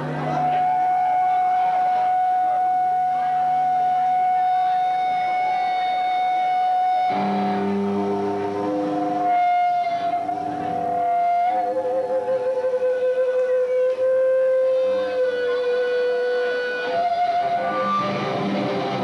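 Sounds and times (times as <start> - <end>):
electric guitar feedback tone: 0.0 - 19.0
picked guitar notes: 0.0 - 19.0.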